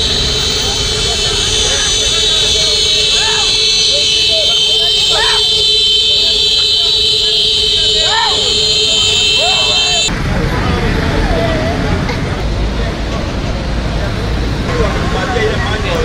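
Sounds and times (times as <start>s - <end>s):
motorbike horns droning: 0.0s - 10.1s
people shouting: 0.0s - 10.1s.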